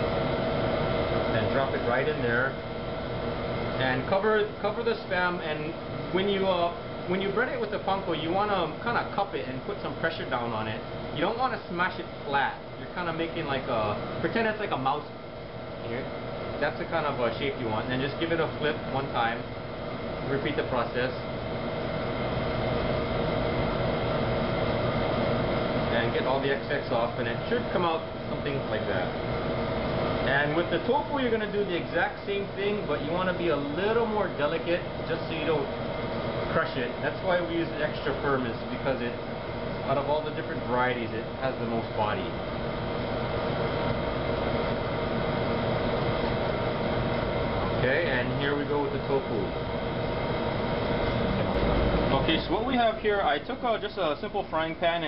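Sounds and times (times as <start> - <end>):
kitchen equipment humming: 0.0 - 55.0.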